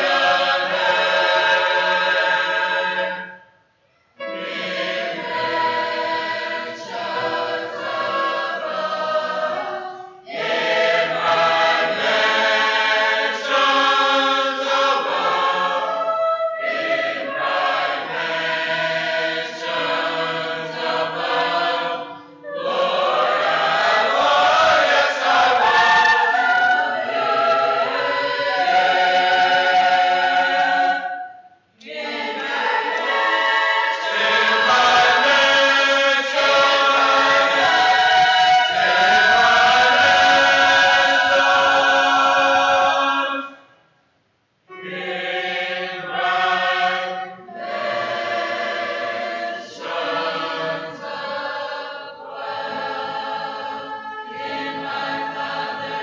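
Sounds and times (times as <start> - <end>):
choir singing: 0.0 - 43.8, 44.7 - 56.0.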